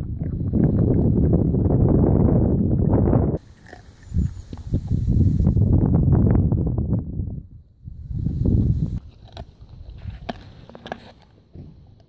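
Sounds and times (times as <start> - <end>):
wind rumbling on microphone: 0.0 - 12.0
dog chewing: 3.4 - 5.0, 9.0 - 12.0.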